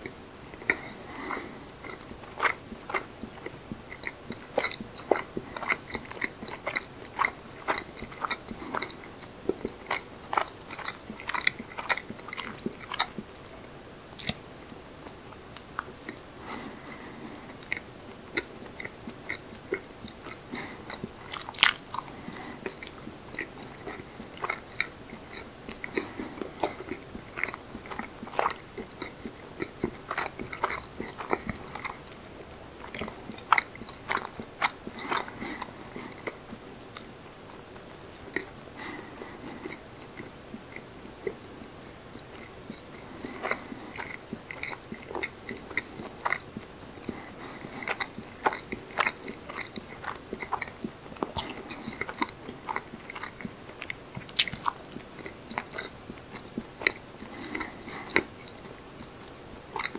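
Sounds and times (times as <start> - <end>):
close-miked chewing: 0.0 - 59.9
mouth clicks and smacks: 14.1 - 32.2, 32.8 - 37.2, 38.1 - 59.9.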